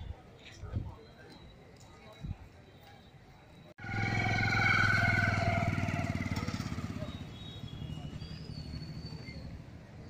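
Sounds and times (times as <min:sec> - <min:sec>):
motorcycle engine passing: 0:03.8 - 0:09.9.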